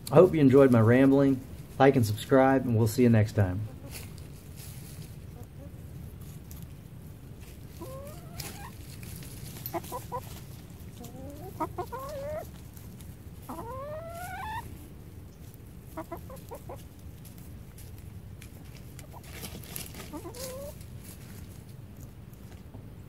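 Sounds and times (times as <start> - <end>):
hens clucking and calling: 3.5 - 21.2.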